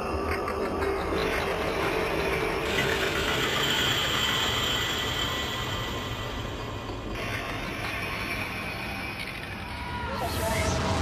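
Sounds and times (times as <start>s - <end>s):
dark psytrance music: 0.0s - 11.0s.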